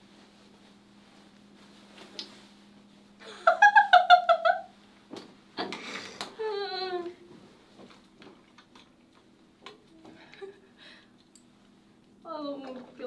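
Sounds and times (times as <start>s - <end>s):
steady low hum: 0.0s - 13.0s
woman laughing: 3.2s - 4.7s.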